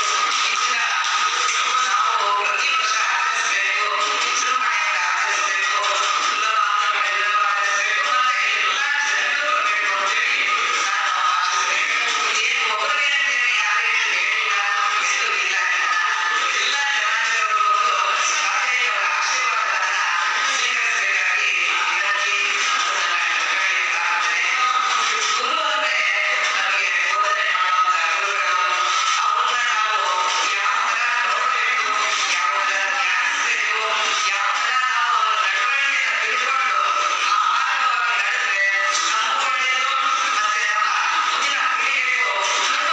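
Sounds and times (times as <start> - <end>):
woman singing over loudspeakers: 0.0 - 42.9.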